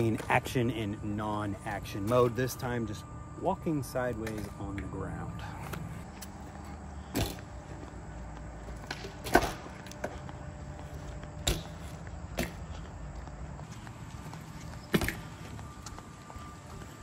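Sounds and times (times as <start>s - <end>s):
footsteps on concrete: 5.5s - 17.0s.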